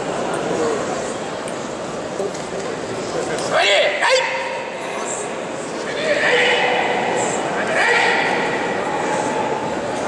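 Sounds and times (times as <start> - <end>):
crowd chatter: 0.0 - 10.0
shouted calls echoing in hall: 3.4 - 10.0.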